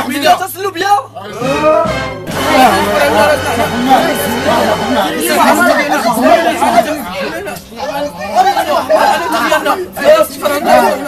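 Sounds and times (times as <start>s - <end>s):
young men talking agitatedly: 0.0s - 11.0s.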